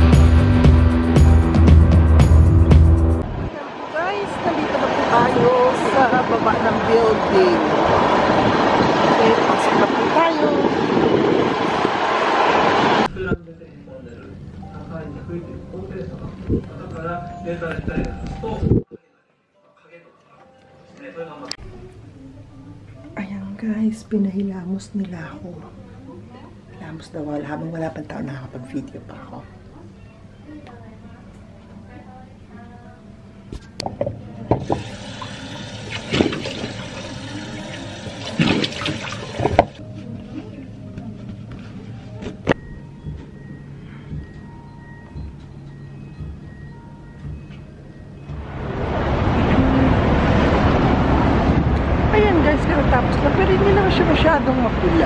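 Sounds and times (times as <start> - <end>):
water running into a washbasin: 34.5 - 39.8
water splashes: 34.6 - 39.8
traffic din: 48.3 - 55.0.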